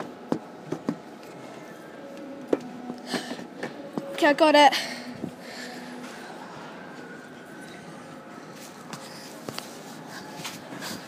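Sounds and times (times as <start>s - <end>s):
faint distant voices: 0.0s - 11.0s
store background hum: 0.0s - 11.0s.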